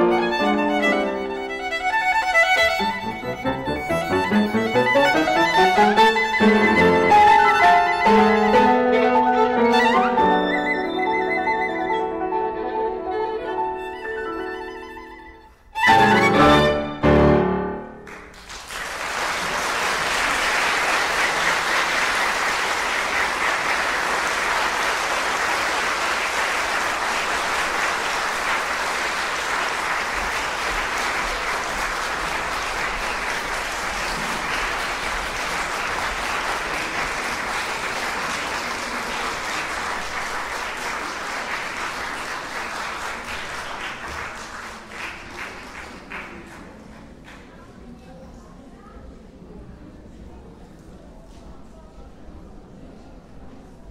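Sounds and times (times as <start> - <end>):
audience applauding: 0.0 - 8.8, 18.0 - 47.6.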